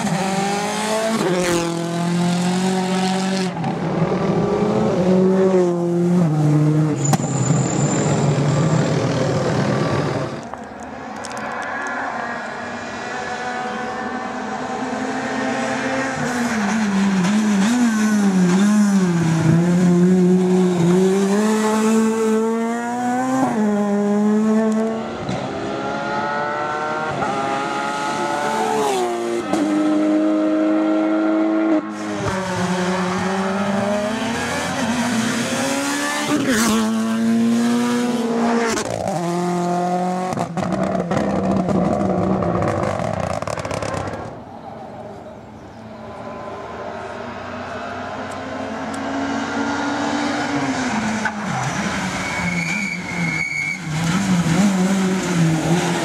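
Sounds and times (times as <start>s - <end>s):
rally car engines at full throttle: 0.0s - 56.0s.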